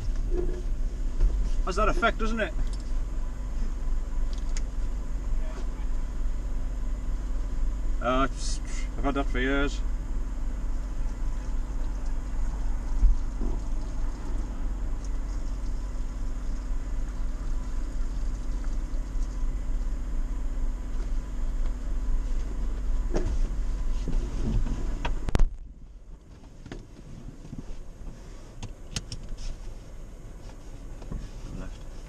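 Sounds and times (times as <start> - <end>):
vehicle engine idling: 0.0 - 32.0.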